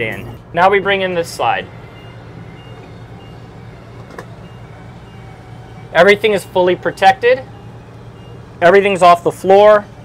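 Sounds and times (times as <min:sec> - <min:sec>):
short warning beeps: 0:00.0 - 0:09.2
engine low hum: 0:00.0 - 0:10.0.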